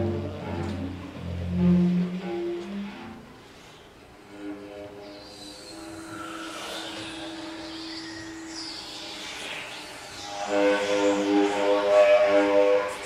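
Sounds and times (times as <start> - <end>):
improvising ensemble playing: 0.0 - 3.5.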